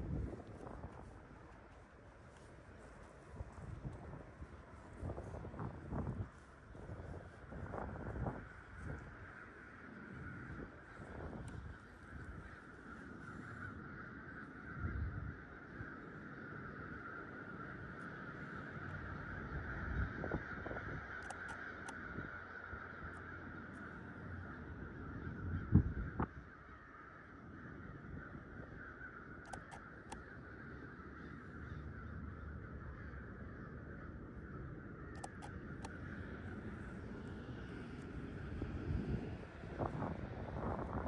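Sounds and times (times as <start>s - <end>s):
crows cawing: 0.0s - 41.0s
flock of birds calling: 0.0s - 41.0s
sharp click: 35.2s - 36.0s.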